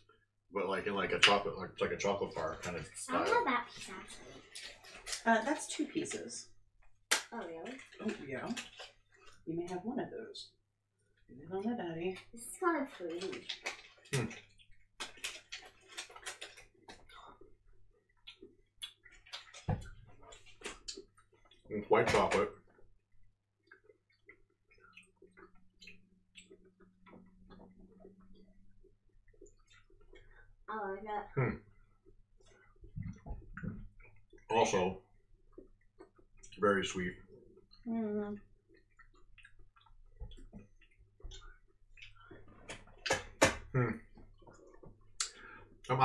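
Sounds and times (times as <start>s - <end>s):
people chewing crunchy food: 0.0s - 9.8s, 12.2s - 30.7s, 31.3s - 46.0s.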